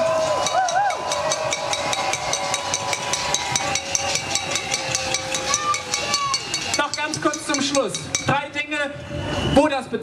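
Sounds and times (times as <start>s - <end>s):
crowd banging on pots and pans: 0.0s - 8.6s
steady whistle-like tones: 9.0s - 10.0s.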